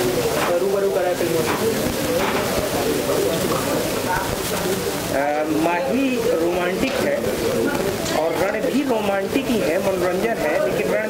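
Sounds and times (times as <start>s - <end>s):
steady background noise: 0.0s - 11.0s
man speaking: 5.1s - 11.0s.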